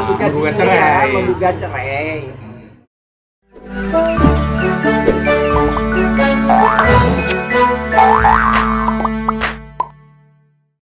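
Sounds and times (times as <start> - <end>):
springy boing effects: 5.5 - 7.2, 8.0 - 9.2.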